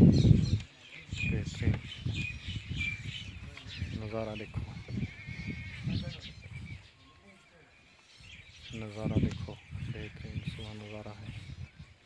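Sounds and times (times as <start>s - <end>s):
farm animal calling: 1.0s - 11.6s.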